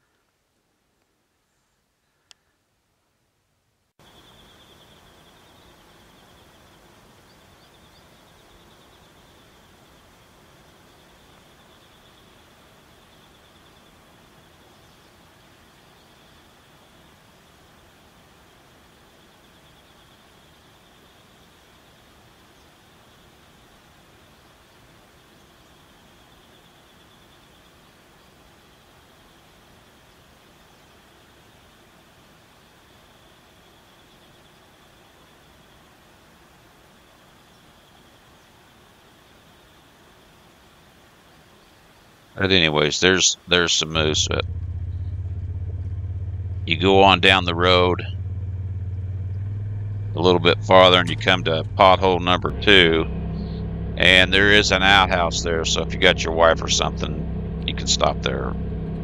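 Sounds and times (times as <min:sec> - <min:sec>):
outdoor background hiss: 0:00.0 - 0:59.0.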